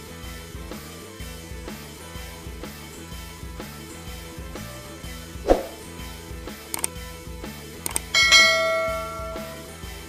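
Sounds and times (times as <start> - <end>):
soft background music: 3.6 - 10.0
double mouse click: 6.7 - 6.9, 7.8 - 8.1
bright bell ding: 8.0 - 9.7.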